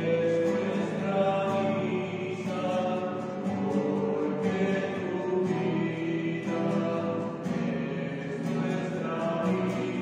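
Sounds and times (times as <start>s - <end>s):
voices singing a slow hymn: 0.0s - 10.0s.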